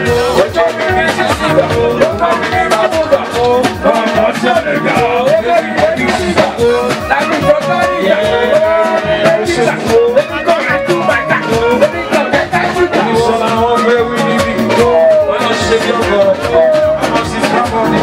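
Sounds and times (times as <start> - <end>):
person singing: 0.0 - 18.0.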